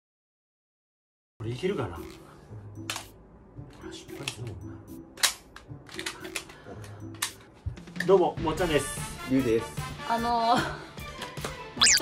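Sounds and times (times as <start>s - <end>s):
plastic toy clicks: 5.2s - 6.6s.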